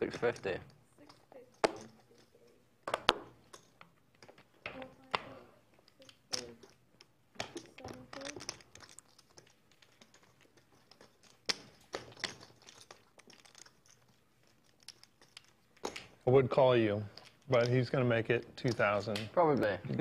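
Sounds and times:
poker chips clicking: 1.0 - 20.0.

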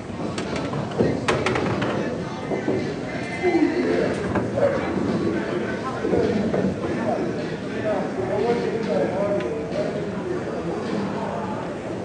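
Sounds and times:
indistinct voices in large room: 0.0 - 12.0.

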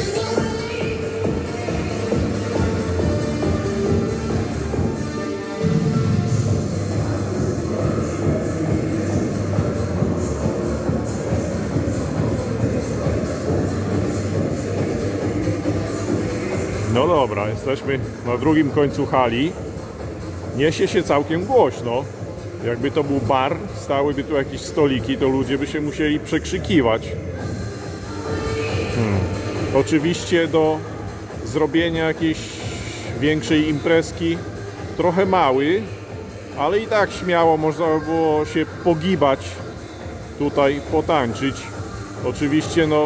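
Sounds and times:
dance music through a speaker: 0.0 - 43.0.

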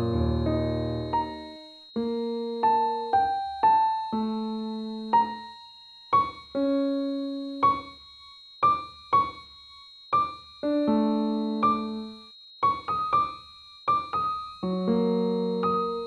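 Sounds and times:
gentle piano music: 0.0 - 9.5, 10.1 - 16.0
faint high-pitched tone: 0.0 - 16.0.

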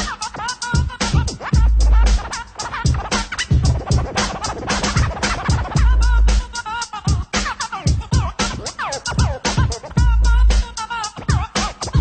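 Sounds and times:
hip hop drum beat: 0.0 - 12.0
rapid turntable scratching: 0.0 - 12.0.

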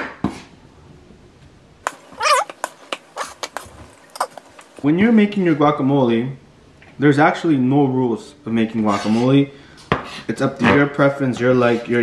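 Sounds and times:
knife scraping cutting board: 8.9 - 9.4.

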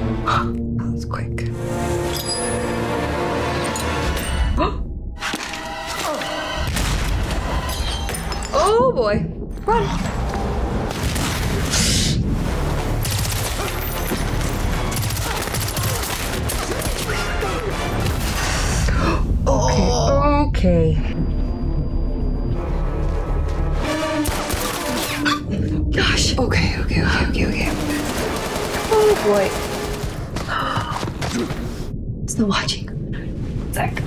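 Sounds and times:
rapid automatic rifle fire: 27.7 - 30.2.

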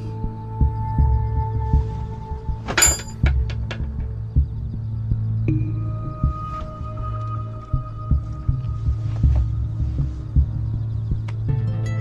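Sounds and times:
low throbbing heartbeat pulse: 0.0 - 11.8
steady low drone: 0.0 - 12.0.

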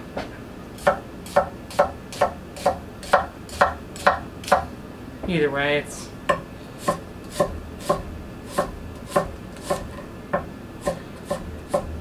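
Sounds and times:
knife chopping on wooden board: 0.8 - 4.7, 6.3 - 11.9.

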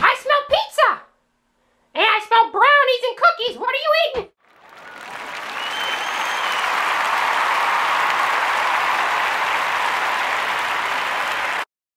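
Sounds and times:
audience applause: 4.4 - 11.7
whistle: 4.7 - 7.0.

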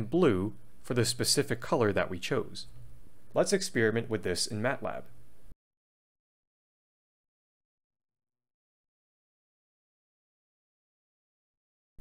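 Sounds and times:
background hiss: 0.0 - 5.6.

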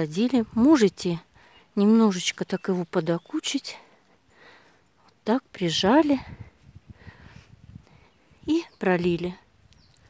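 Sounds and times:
woman speaking: 0.0 - 3.9, 5.0 - 6.4, 8.4 - 9.5.

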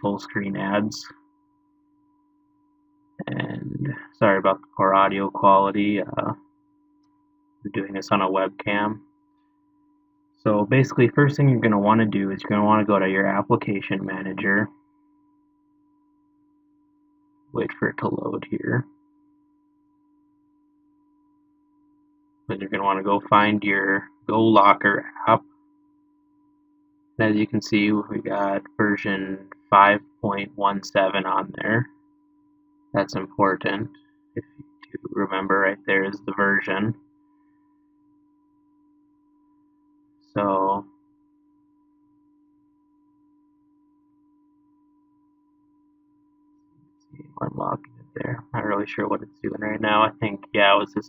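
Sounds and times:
faint electrical hum: 0.0 - 51.0
faint high electrical tone: 0.0 - 51.0.

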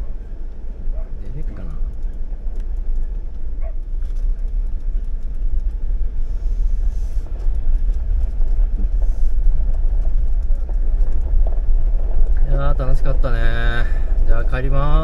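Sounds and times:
vehicle engine rumble: 0.0 - 15.0
wind: 0.0 - 15.0
gravel ticks: 0.1 - 15.0.

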